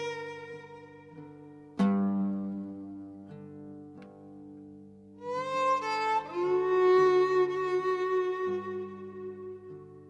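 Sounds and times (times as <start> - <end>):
violin playing slow notes: 0.0 - 1.7, 5.2 - 10.0.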